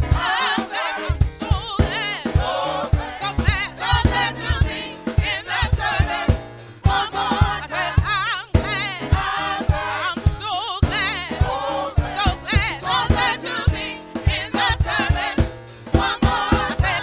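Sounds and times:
accompaniment with low beat: 0:00.0 - 0:17.0
group singing gospel: 0:00.0 - 0:17.0.

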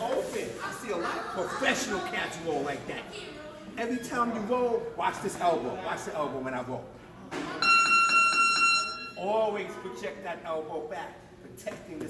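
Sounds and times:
high-pitched electronic beep: 0:07.6 - 0:09.2.

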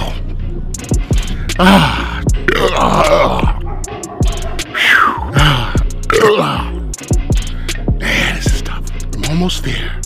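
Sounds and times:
hip-hop beat with deep bass: 0:00.0 - 0:10.0
man groaning and grunting: 0:01.2 - 0:03.7, 0:04.7 - 0:07.0.

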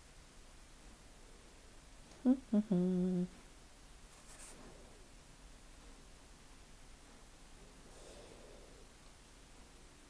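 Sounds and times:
woman humming laugh: 0:02.2 - 0:03.3.

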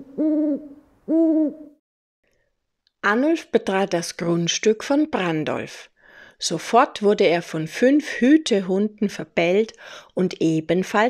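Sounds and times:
hoots bending down: 0:00.0 - 0:01.8.

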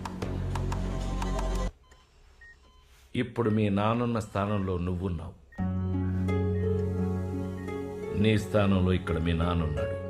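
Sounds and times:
film music with clicking beat: 0:00.0 - 0:01.8, 0:05.6 - 0:08.2.

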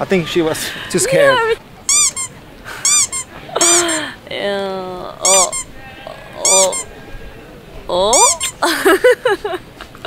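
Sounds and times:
bird calling: 0:05.2 - 0:06.9.

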